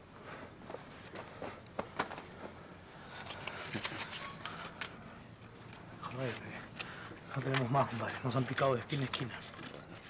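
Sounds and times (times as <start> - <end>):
rustling of clothing and paper money: 3.0 - 10.0.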